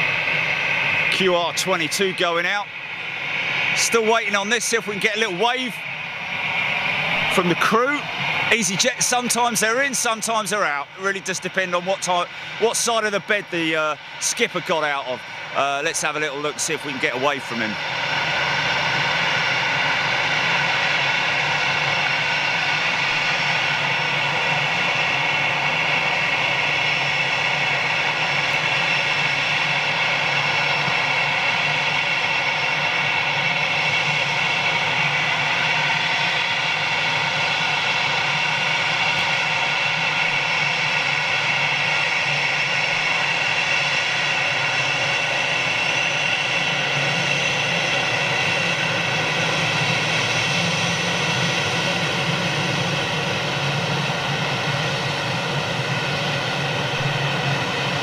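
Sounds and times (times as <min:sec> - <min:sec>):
jet engines idling: 0:00.0 - 0:58.0.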